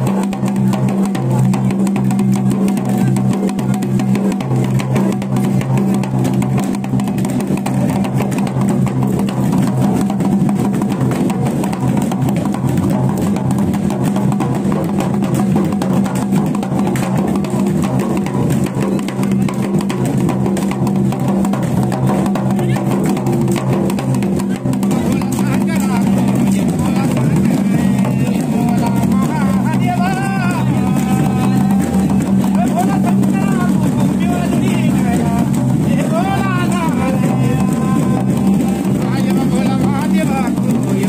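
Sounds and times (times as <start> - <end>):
drums beaten fast: 0.0 - 41.0.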